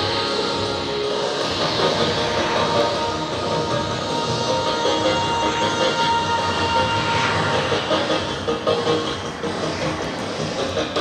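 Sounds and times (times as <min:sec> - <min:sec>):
loud music: 0:00.0 - 0:11.0
model aircraft engine: 0:00.0 - 0:11.0.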